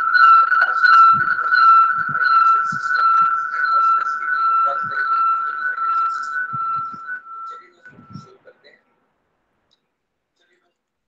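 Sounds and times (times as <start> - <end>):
high whistle-like tone: 0.0 - 8.4.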